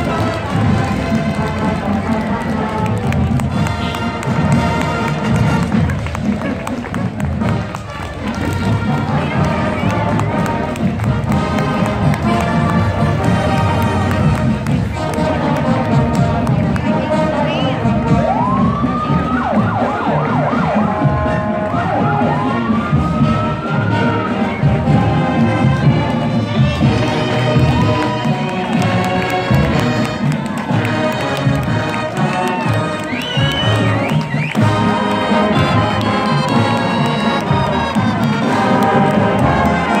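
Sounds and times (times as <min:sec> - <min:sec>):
crowd chatter: 0:00.0 - 0:40.0
marching band music: 0:00.0 - 0:40.0
siren rising and yelping: 0:18.2 - 0:24.4.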